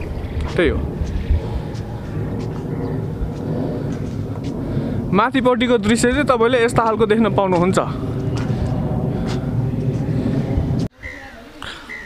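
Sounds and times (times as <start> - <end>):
distant road traffic rumble: 0.0 - 10.9.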